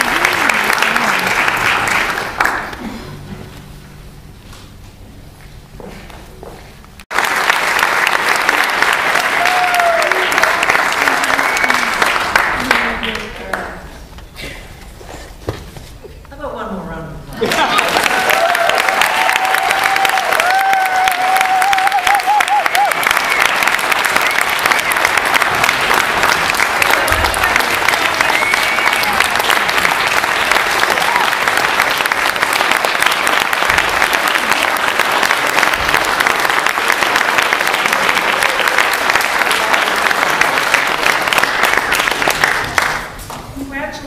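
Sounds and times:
audience applauding: 0.0s - 3.2s, 7.1s - 13.7s, 17.4s - 43.3s.

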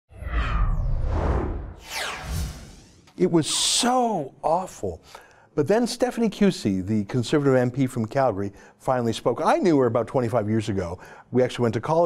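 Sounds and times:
rushing whoosh: 0.1s - 3.2s
falling swoosh: 0.1s - 3.7s.

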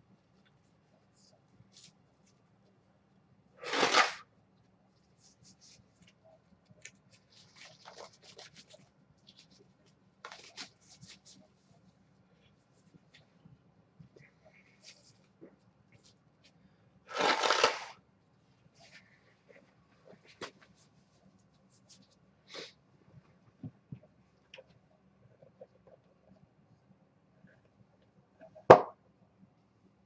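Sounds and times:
cards and packaging rustling: 3.6s - 4.2s, 6.8s - 9.6s, 10.3s - 11.2s, 17.1s - 18.0s.

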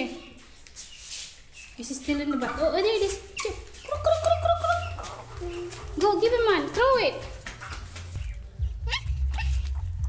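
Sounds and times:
steady low rumble: 8.1s - 10.0s
dog whining: 8.7s - 9.7s.

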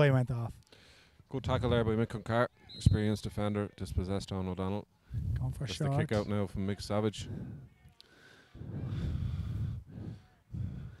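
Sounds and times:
muffled buffeting puffs on microphone: 5.1s - 5.5s, 7.1s - 7.8s, 8.6s - 11.0s.

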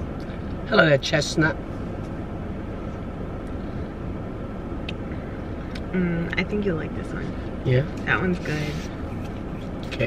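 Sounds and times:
car cabin rumble: 0.0s - 10.0s.

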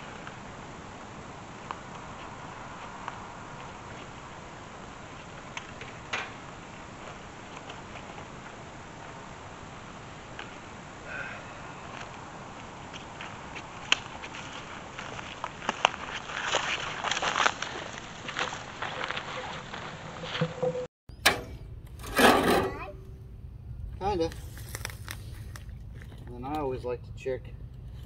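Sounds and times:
footsteps in dry brush: 11.8s - 20.6s, 24.2s - 26.8s
loud scraping noise: 19.9s - 23.2s
low steady hum: 21.1s - 28.0s.

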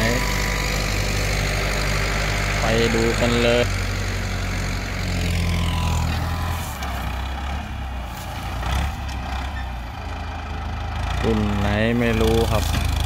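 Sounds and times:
tractor diesel engine running: 0.0s - 13.0s.

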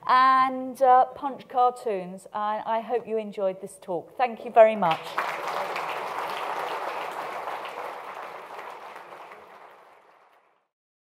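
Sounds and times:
audience applauding: 4.9s - 10.7s.

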